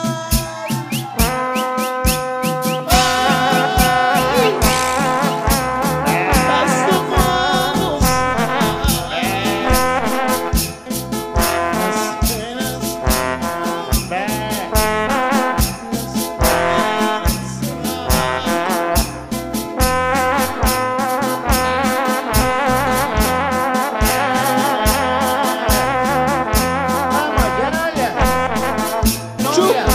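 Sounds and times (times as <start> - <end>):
instrumental band music with brass: 0.0 - 29.9.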